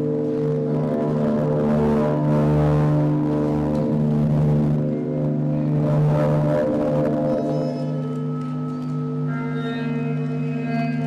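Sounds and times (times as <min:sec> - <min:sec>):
electric guitar feedback drone: 0:00.0 - 0:11.0
higher ringing tones: 0:00.0 - 0:11.0.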